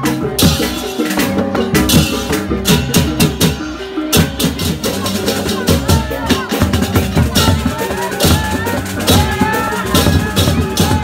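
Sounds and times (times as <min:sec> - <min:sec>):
crowd voices: 0:00.0 - 0:11.0
cymbals clashing: 0:00.0 - 0:11.0
drum strokes: 0:00.0 - 0:11.0.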